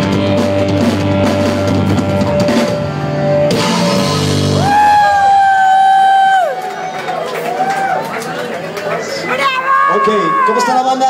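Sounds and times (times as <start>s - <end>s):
live rock band playing: 0.0s - 5.9s.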